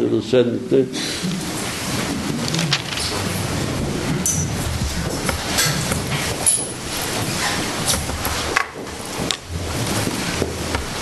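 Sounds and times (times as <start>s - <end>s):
chairs scraping and people shuffling: 1.0s - 11.0s.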